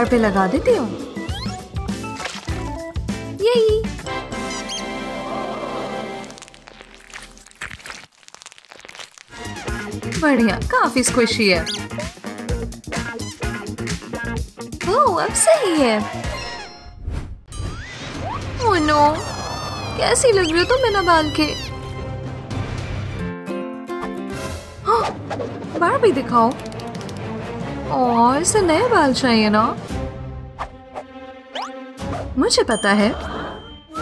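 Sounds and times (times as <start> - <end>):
background music: 0.0 - 6.6, 9.3 - 16.8, 17.6 - 34.0
cartoon bat squeaks: 1.3 - 1.7, 4.4 - 5.0, 11.6 - 12.1, 19.1 - 21.8.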